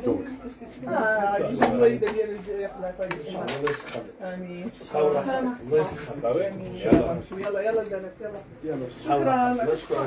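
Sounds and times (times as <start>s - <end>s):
gold chain clinking: 7.4s - 8.0s.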